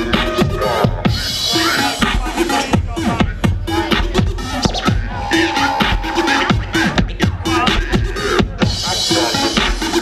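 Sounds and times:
steady bass beat: 0:00.0 - 0:10.0
turntable scratching: 0:00.0 - 0:10.0.

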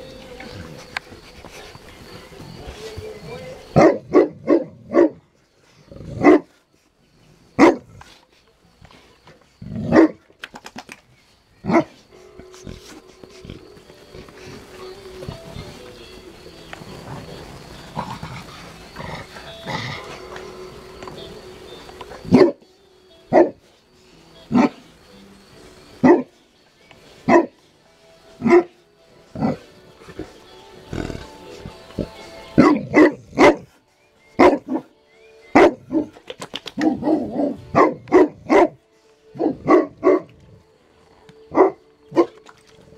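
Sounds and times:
large dog barking deeply: 0:03.8 - 0:05.2, 0:06.0 - 0:06.5, 0:32.6 - 0:33.7, 0:36.8 - 0:38.8, 0:39.4 - 0:40.3.

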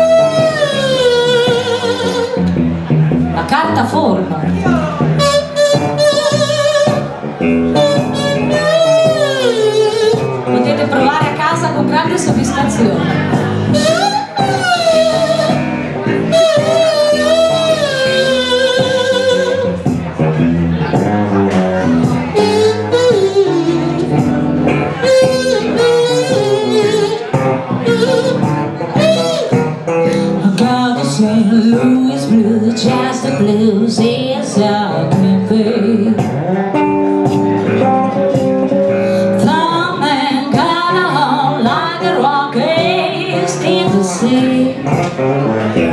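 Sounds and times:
blues harmonica bending note: 0:00.0 - 0:03.8, 0:04.6 - 0:31.1
guitar plucked notes: 0:00.0 - 0:45.9.

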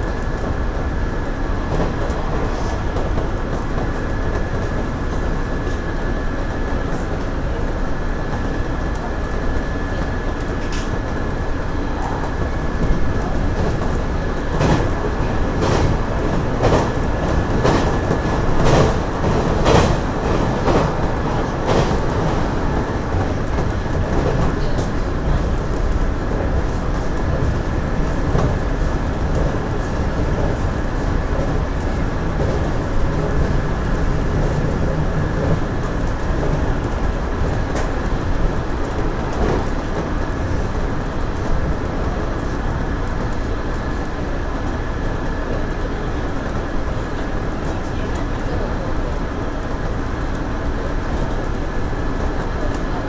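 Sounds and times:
wheels rumbling on rail: 0:00.0 - 0:53.0.

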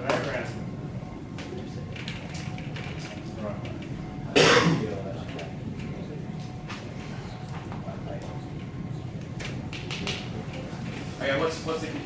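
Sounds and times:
low room hum: 0:00.0 - 0:12.0
loud cough: 0:04.3 - 0:05.0.

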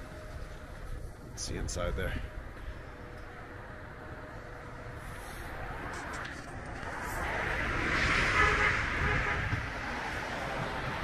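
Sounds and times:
car passing: 0:02.2 - 0:11.0.

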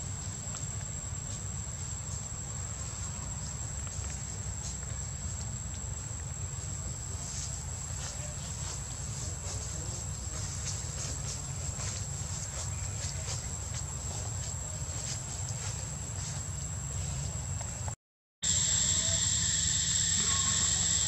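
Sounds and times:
insects droning: 0:00.0 - 0:21.0.

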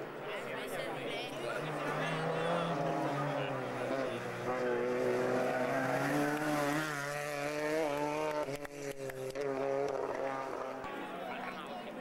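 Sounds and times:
rally car engine revving: 0:01.4 - 0:11.7.

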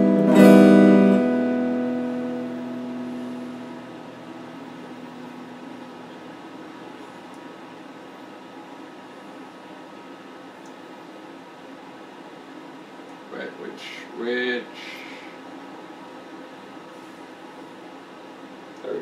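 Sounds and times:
electric guitar chord ringing: 0:00.0 - 0:07.0
steady hiss: 0:12.8 - 0:19.0.

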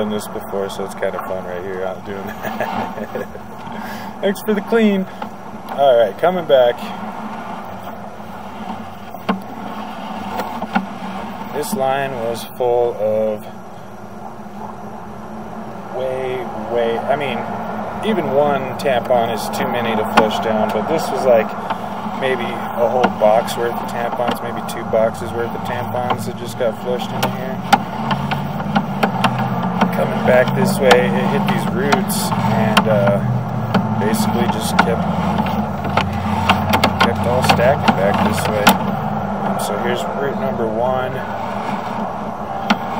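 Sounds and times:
low mechanical hum: 0:00.0 - 0:42.9
sharp click: 0:27.0 - 0:39.6.

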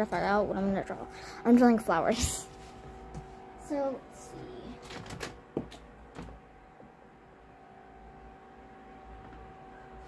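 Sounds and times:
steady room hum: 0:00.0 - 0:10.0.

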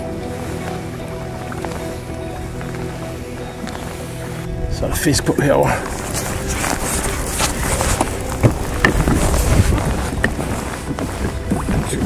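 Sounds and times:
water lapping around kayak: 0:00.0 - 0:12.0
wind rumbling on microphone: 0:00.0 - 0:12.0.

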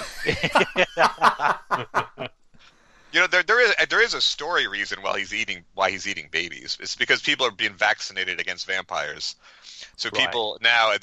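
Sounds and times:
people laughing: 0:00.0 - 0:02.3, 0:03.2 - 0:08.5, 0:09.8 - 0:11.0.

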